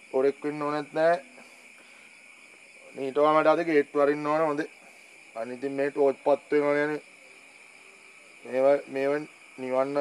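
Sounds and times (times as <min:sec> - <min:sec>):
night insects chirring: 0:00.0 - 0:10.0
man's voice: 0:08.5 - 0:10.0.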